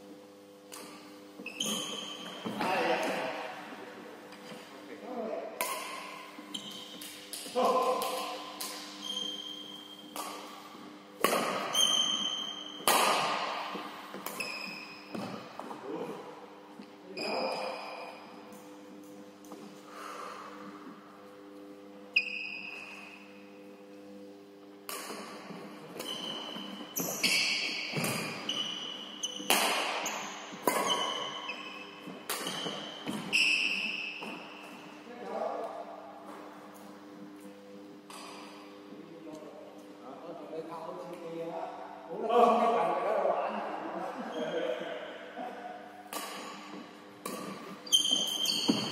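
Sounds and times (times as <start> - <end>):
steady low hum: 0.0 - 48.9
sports shoes squeaking on floor: 0.9 - 3.1, 5.9 - 7.2, 8.7 - 10.5, 11.2 - 15.8, 17.1 - 18.4, 22.1 - 23.6, 25.1 - 35.0, 46.4 - 48.9
racket striking shuttlecock: 5.6 - 15.4, 24.8 - 34.7, 46.0 - 48.9.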